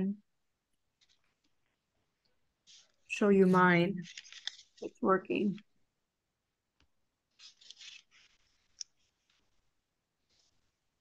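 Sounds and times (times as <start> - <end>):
faint scratchy rustling: 0.9 - 5.6, 7.3 - 11.0.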